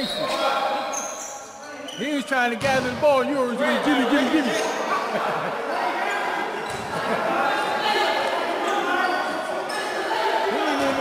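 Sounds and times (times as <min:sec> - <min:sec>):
men's voices: 0:02.0 - 0:05.5.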